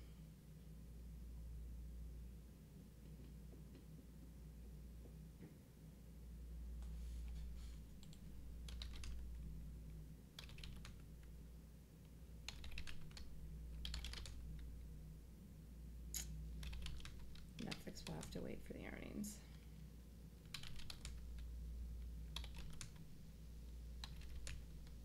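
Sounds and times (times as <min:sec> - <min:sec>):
low steady hum: 0:00.0 - 0:25.0
keyboard keys tapping: 0:08.0 - 0:09.3, 0:10.4 - 0:11.0, 0:12.5 - 0:13.2, 0:13.8 - 0:14.4, 0:16.6 - 0:18.4, 0:20.5 - 0:21.5, 0:22.4 - 0:23.0, 0:24.0 - 0:25.0.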